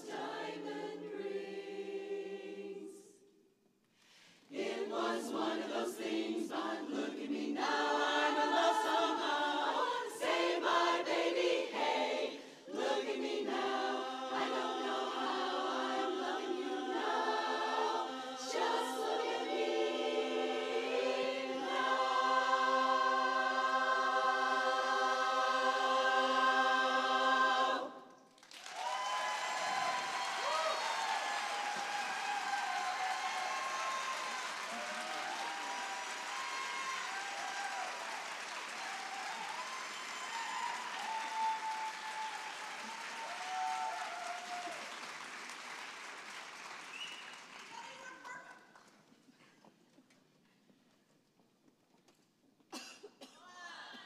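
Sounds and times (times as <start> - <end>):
women's chorus singing a cappella: 0.0 - 3.5, 4.2 - 28.2
audience applause and cheers: 28.3 - 48.4.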